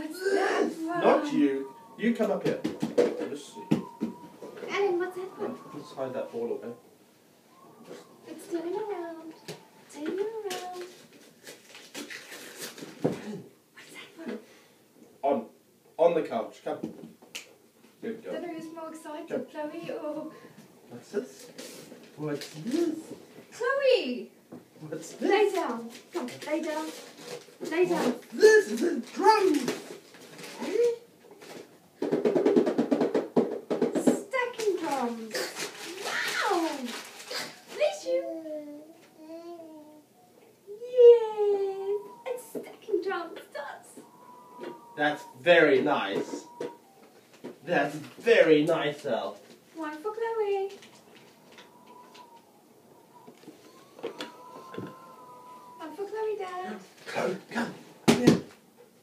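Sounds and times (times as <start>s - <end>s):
dog whining: 0.0s - 6.8s, 7.5s - 10.8s, 27.8s - 31.1s, 34.9s - 47.3s, 50.4s - 57.2s
rustling: 0.0s - 13.5s, 17.8s - 23.6s, 24.9s - 40.0s, 40.8s - 58.9s
baby vocalizing: 41.8s - 42.9s, 43.9s - 47.0s, 51.3s - 56.8s.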